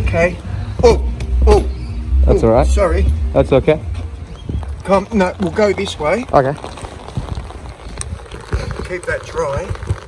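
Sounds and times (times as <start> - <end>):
rain pattering on an umbrella: 4.4 - 10.0.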